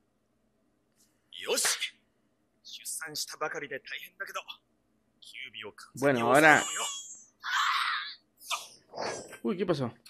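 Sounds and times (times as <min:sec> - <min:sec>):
person shouting: 0:06.3 - 0:08.2.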